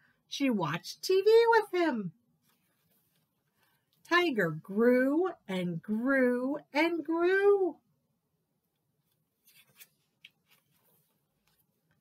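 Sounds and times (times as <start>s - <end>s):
paper rustling: 9.1s - 12.0s.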